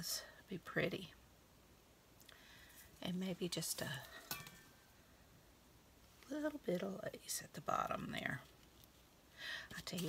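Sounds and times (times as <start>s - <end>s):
faint rustle of craft materials: 2.1s - 5.3s, 5.9s - 10.0s.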